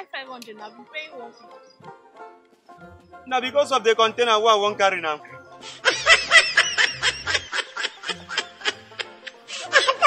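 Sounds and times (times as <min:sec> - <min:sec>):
background music with low bass: 0:00.0 - 0:10.0.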